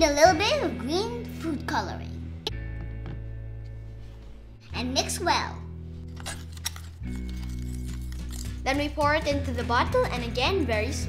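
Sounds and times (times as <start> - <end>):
background music with sustained notes: 0.0 - 11.0.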